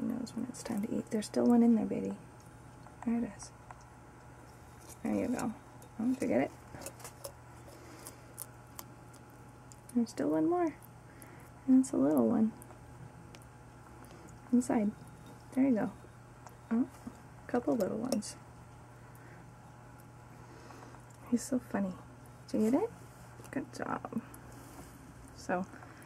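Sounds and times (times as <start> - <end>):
low steady hum: 0.0 - 26.0
lizard crunching a cockroach: 2.3 - 18.2.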